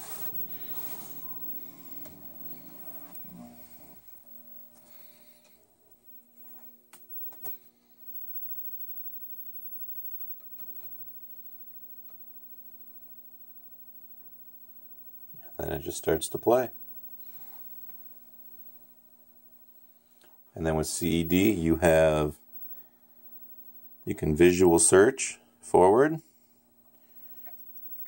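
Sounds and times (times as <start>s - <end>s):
faint mechanical whir: 0.0s - 28.0s
faint steady hum: 0.0s - 28.0s.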